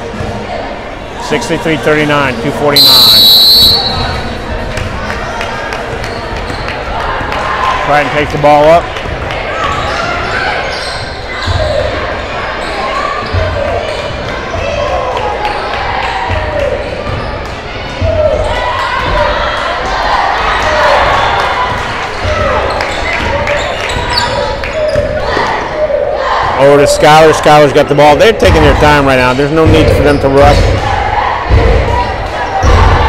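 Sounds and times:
echoing crowd voices and shouts: 0.0 - 33.0.

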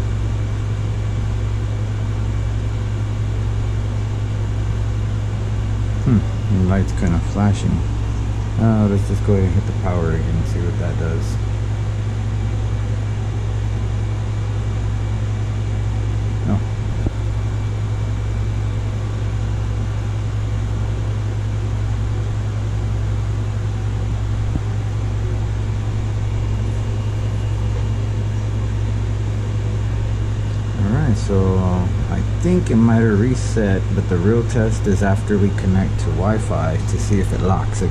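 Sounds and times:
fan humming and whirring: 0.0 - 37.9.

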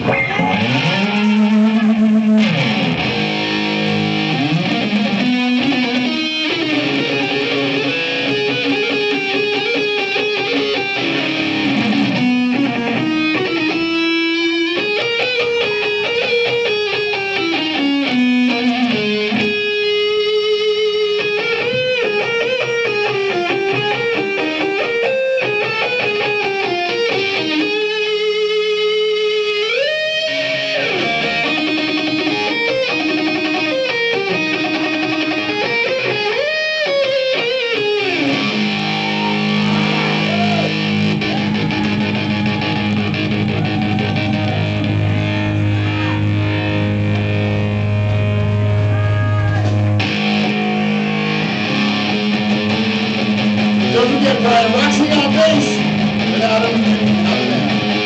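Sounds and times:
electric guitar solo: 0.0 - 58.0.

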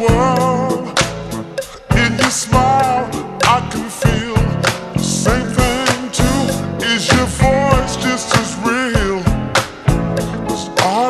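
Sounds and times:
bass: 0.0 - 11.0
drum beat: 1.2 - 11.0
wavering sung vocal: 1.9 - 9.4.

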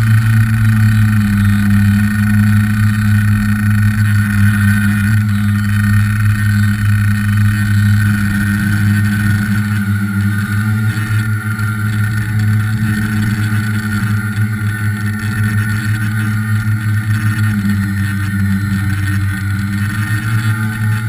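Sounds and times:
drone motors and propellers: 0.0 - 21.0.

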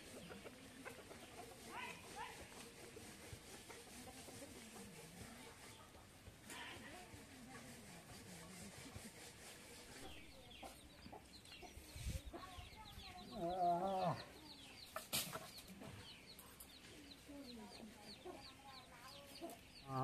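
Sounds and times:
chickens peeping: 0.0 - 6.2, 10.0 - 20.0.

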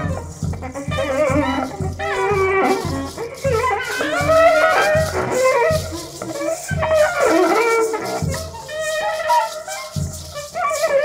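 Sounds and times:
improvised ensemble music: 0.0 - 11.0
low clarinet notes: 0.0 - 11.0.

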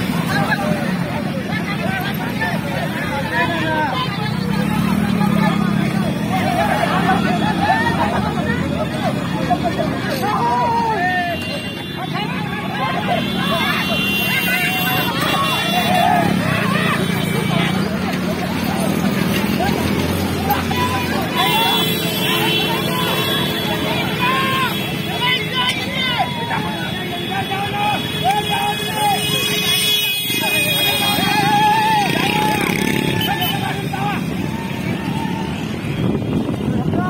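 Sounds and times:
motorcycle engines running: 0.0 - 37.0
crowd shouting and whooping: 5.3 - 37.0.

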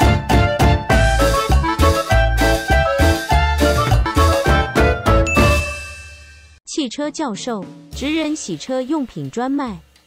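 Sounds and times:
jingle chord: 5.1 - 6.6
bright ding ringing: 5.3 - 6.6
person speaking: 6.7 - 9.9.

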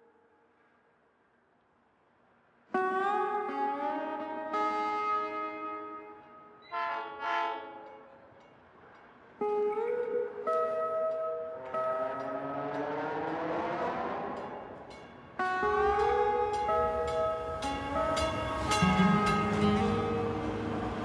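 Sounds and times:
train horn blasts: 3.4 - 8.3, 15.4 - 21.0.

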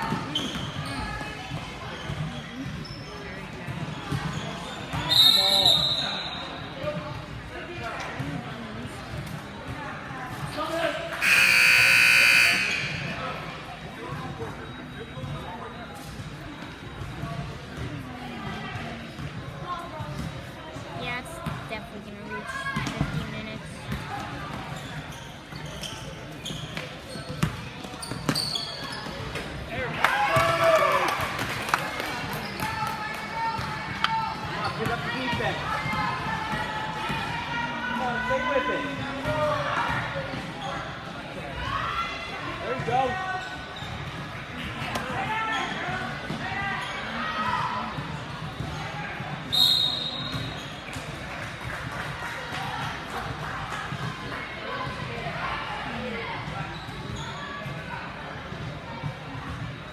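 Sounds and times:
referee whistle blast: 11.2 - 13.2, 49.5 - 50.3.

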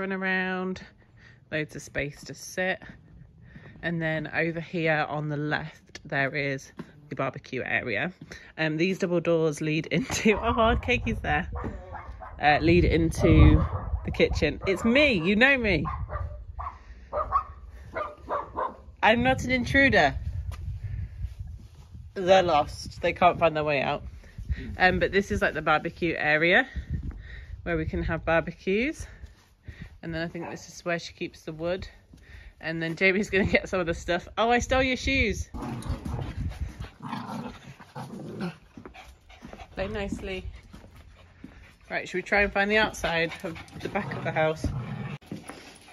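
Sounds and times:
small dogs barking: 11.5 - 12.4, 14.7 - 18.9
dogs growling and grunting: 35.5 - 39.7, 43.2 - 45.9.

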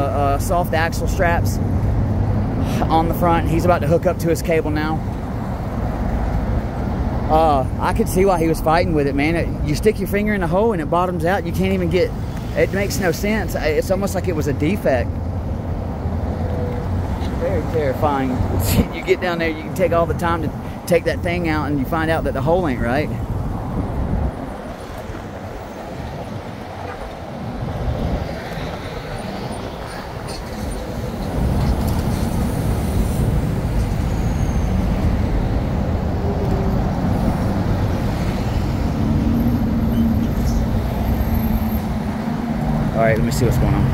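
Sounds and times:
traffic rumble: 0.0 - 43.9.

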